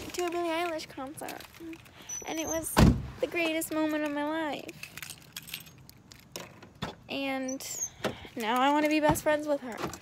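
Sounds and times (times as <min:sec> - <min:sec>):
small loose objects jingling: 0:00.0 - 0:02.6, 0:03.6 - 0:06.6.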